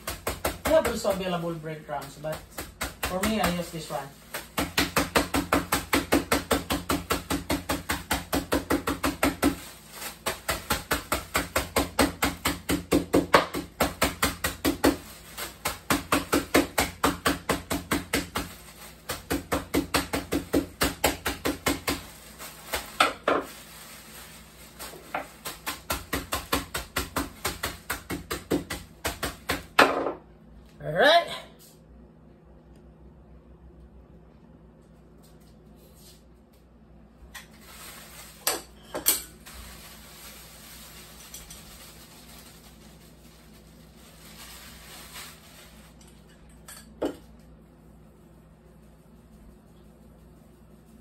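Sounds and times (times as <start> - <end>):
plastic bag rustling: 0.7 - 5.6, 6.2 - 12.7, 13.6 - 27.9, 37.4 - 46.5.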